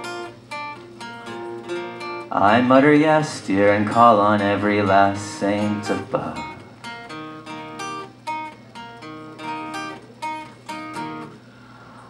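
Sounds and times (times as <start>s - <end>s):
acoustic guitar chords: 0.0s - 12.0s
person singing: 2.3s - 6.7s.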